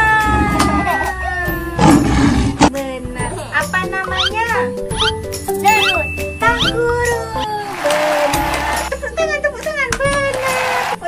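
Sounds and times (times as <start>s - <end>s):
lion roar: 0.0s - 1.0s, 1.8s - 2.7s
applause: 7.7s - 8.9s, 10.2s - 11.0s.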